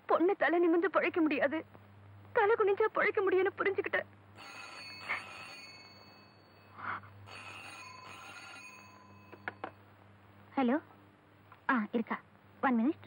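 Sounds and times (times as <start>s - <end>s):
landline telephone ringing: 4.4s - 9.9s.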